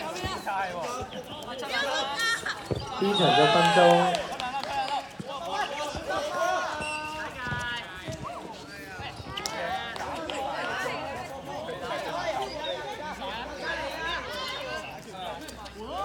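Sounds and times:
players calling out and chattering: 0.0 - 16.0
high shouts: 3.0 - 5.1.

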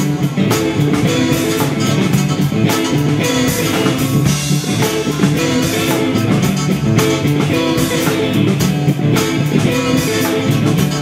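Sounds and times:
drum kit: 0.0 - 11.0
electric guitar: 0.0 - 11.0
live blues band playing: 0.0 - 11.0.

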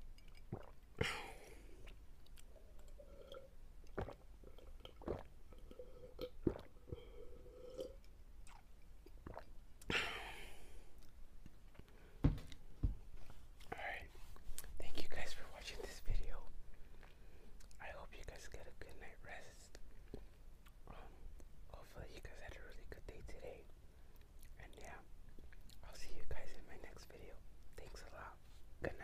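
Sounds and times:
man whispering: 13.7 - 16.6, 17.7 - 19.8, 20.8 - 23.7, 24.5 - 25.1, 25.8 - 29.0.

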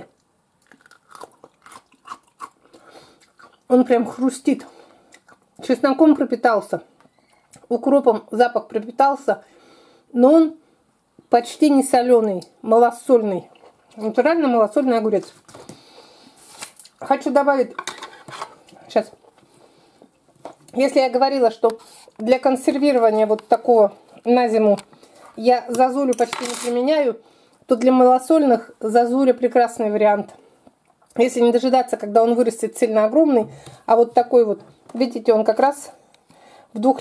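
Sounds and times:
cucumber crunching being chewed: 0.6 - 3.7.

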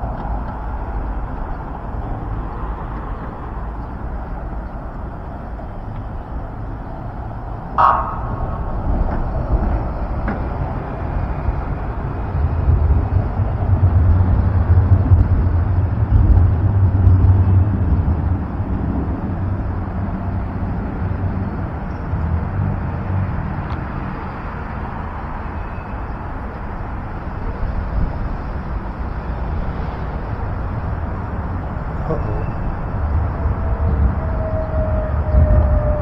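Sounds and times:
road traffic rumble: 0.0 - 36.0.

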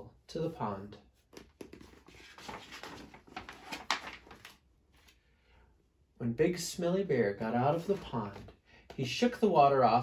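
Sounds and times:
paper page rustling: 1.4 - 5.2.

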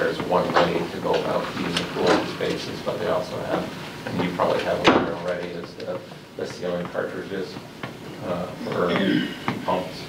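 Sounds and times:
people talking: 0.0 - 7.6, 8.2 - 10.0.

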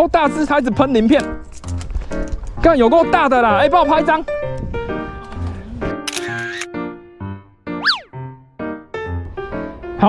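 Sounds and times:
background music: 0.0 - 10.0
camera shutter sound effect: 6.1 - 6.7.

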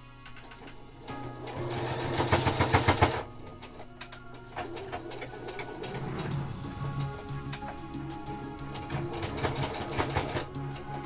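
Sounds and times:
sewing machine stitching: 0.4 - 3.8, 8.7 - 10.6.

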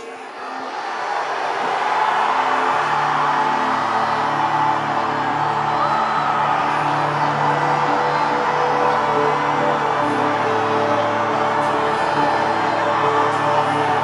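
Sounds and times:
music with long sustained chords: 2.0 - 14.0.

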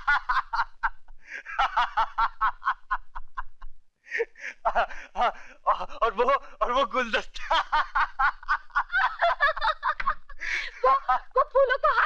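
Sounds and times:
person laughing heartily: 0.0 - 6.4, 7.4 - 12.0.

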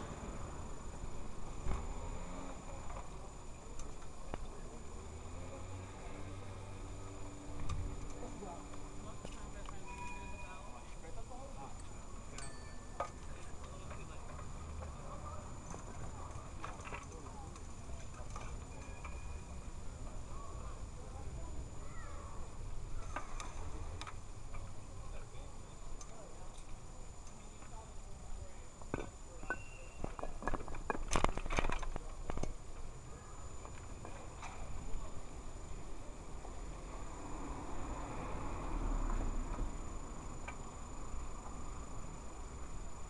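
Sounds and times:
bicycle riding rumble: 0.0 - 28.9
faint voices: 0.0 - 43.0
steady high tone: 8.2 - 13.9
sharp clicks and rattles: 30.0 - 32.6.

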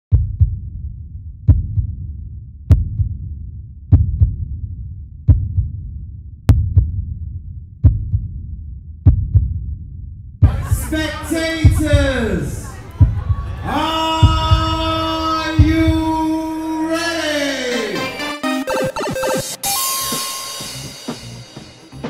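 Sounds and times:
heartbeat-like double drum beat: 0.1 - 0.8, 1.5 - 2.0, 2.7 - 3.3, 3.9 - 4.5, 5.3 - 5.9, 6.5 - 7.2, 7.8 - 9.8, 10.4 - 16.2.

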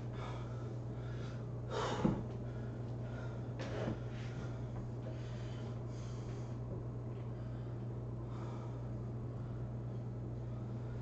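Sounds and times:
man breathing hard: 0.0 - 6.7, 7.3 - 11.0
steady low hum: 0.0 - 11.0.

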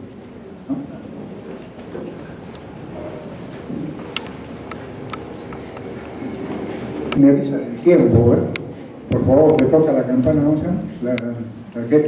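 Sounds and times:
large hall rumble and hiss: 0.0 - 12.0.

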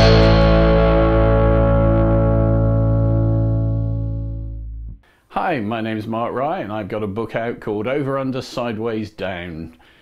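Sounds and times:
distorted electric guitar chord: 0.0 - 4.9.

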